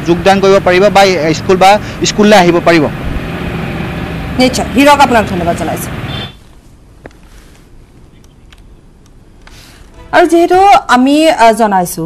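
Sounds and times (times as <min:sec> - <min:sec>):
man speaking: 0:00.0 - 0:03.0.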